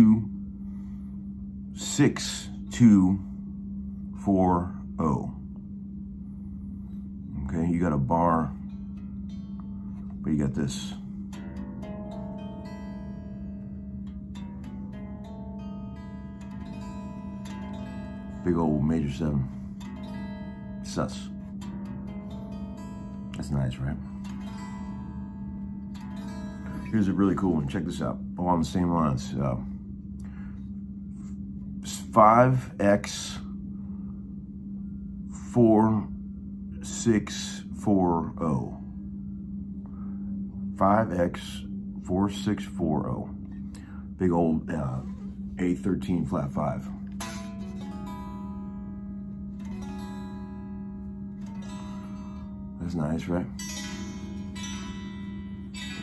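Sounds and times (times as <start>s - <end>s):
electric guitar chord ringing: 0.0s - 56.0s.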